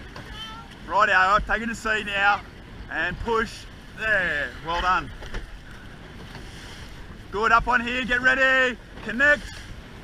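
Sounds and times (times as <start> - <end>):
sea water rushing along hull: 0.0 - 10.0.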